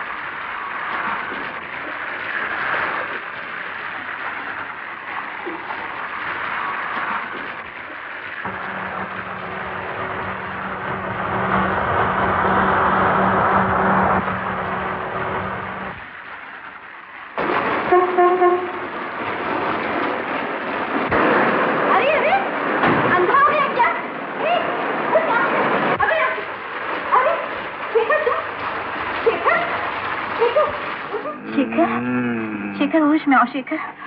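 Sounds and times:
heavy rain on a road: 0.0 - 32.9
car horn: 17.8 - 18.8
person crying out: 31.4 - 33.0.

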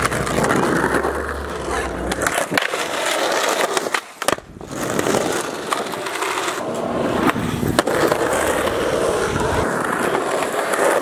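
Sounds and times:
skateboard wheels rolling on asphalt: 0.0 - 11.0.

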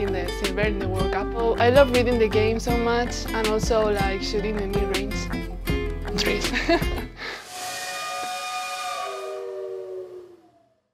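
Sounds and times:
hiss of escaping steam: 7.2 - 9.5
steam whistle chord: 7.3 - 10.7.

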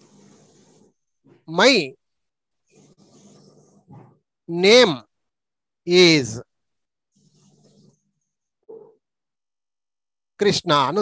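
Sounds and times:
faint hiss: 0.0 - 1.8.

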